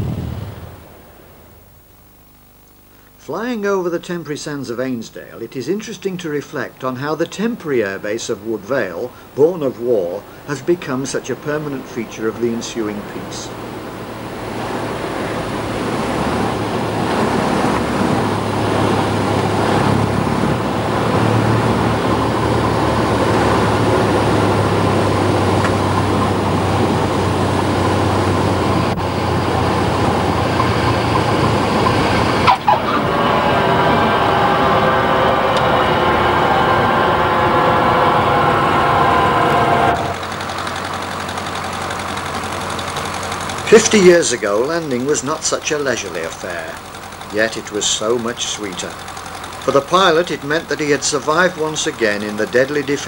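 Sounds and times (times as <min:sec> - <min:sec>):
light aircraft engine and airflow: 0:00.0 - 0:01.8, 0:04.8 - 0:53.0
higher steady tone: 0:08.7 - 0:53.0.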